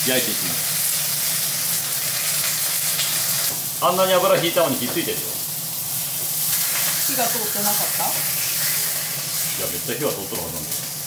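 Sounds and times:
steak sizzling in a pan: 0.0s - 11.0s.

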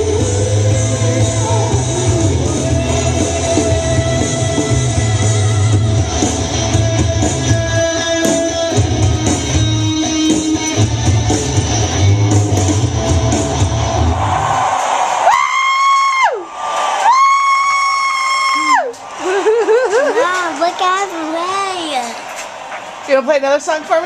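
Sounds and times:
guitar rock music: 0.0s - 14.6s.

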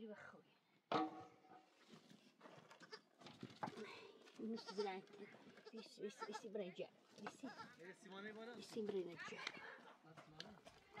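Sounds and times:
faint livestock bleating: 4.5s - 6.5s.

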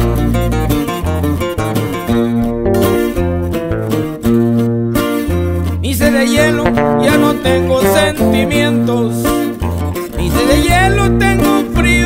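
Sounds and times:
deep bass line: 0.0s - 11.4s
acoustic guitars picking and strumming: 0.0s - 12.0s.

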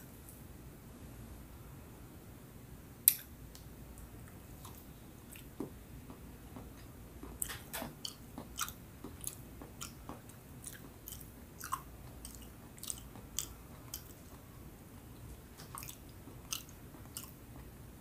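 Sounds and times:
mouth chewing with clicks: 3.0s - 17.8s.

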